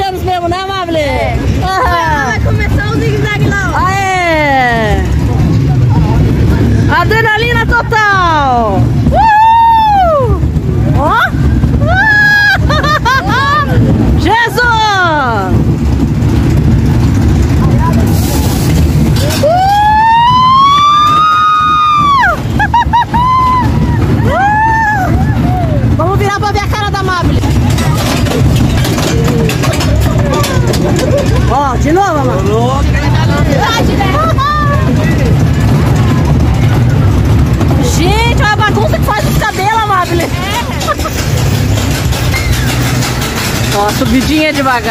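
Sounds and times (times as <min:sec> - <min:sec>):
roller coaster cars rumbling: 0:00.0 - 0:44.9
riders screaming and whooping: 0:08.1 - 0:14.2, 0:18.4 - 0:26.0, 0:27.3 - 0:31.6, 0:32.8 - 0:39.4.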